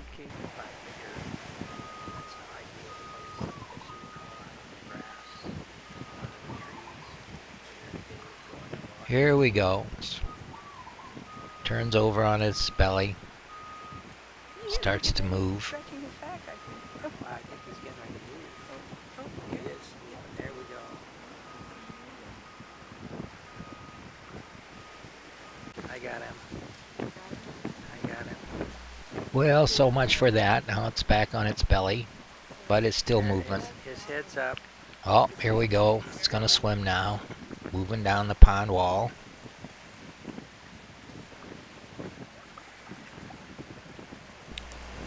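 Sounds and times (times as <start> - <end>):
wind buffeting microphone: 0.0 - 45.0
low rumble: 14.8 - 34.0.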